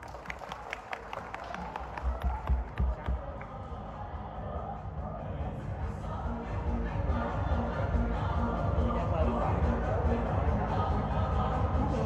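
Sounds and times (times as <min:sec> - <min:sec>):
audience clapping: 0:00.0 - 0:03.6.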